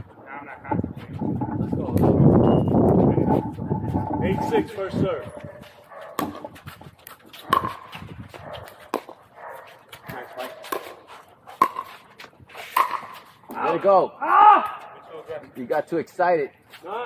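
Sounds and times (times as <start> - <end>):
person shouting: 13.6 - 15.0
light clicks and scuffs: 16.6 - 17.0.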